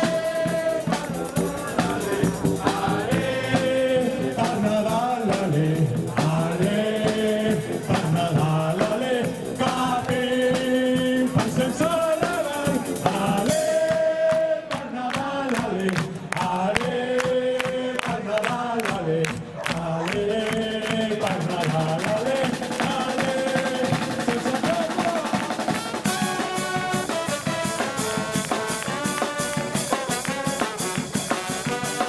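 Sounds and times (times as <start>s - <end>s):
bass drum: 0.0s - 14.5s, 20.5s - 32.0s
snare drum: 0.0s - 17.4s, 20.6s - 32.0s
trombones: 20.2s - 32.0s
trumpet: 22.8s - 32.0s.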